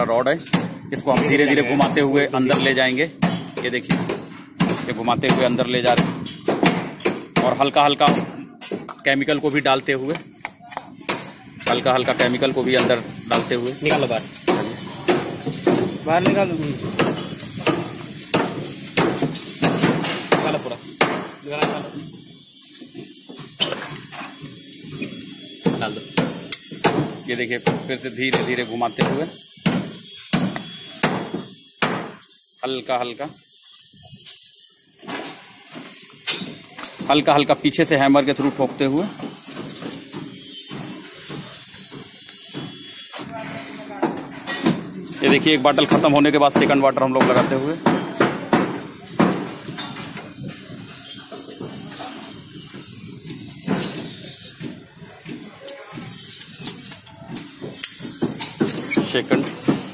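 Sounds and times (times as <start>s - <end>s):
low site background noise: 0.0s - 59.9s
hammer striking steel rebar: 11.1s - 22.0s, 24.9s - 32.2s, 44.0s - 50.3s.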